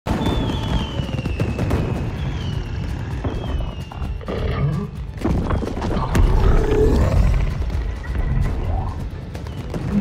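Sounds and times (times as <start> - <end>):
high falling whistles: 0.1 - 4.2
fireworks bursting and crackling: 0.1 - 4.3, 7.4 - 10.0.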